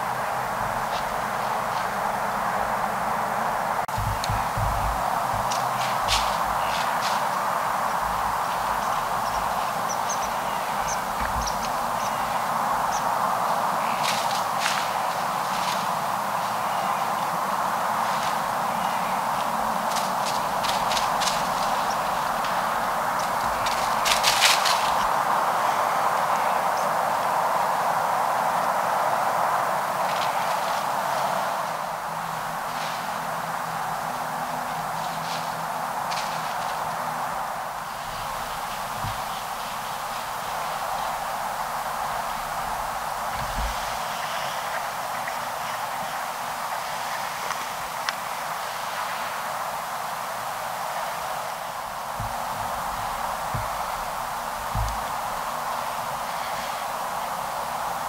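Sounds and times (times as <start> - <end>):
footsteps crunching in dry leaves: 0.0 - 26.6, 30.0 - 58.0
steady hiss: 0.0 - 58.0.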